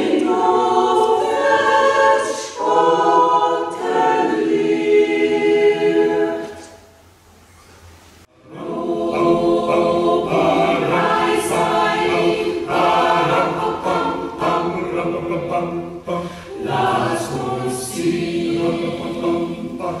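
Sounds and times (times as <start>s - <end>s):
mixed choir singing in harmony: 0.0s - 6.8s, 8.3s - 20.0s.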